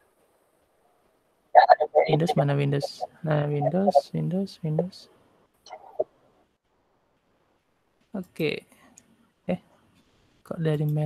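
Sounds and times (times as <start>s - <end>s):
person speaking: 1.6s - 5.0s.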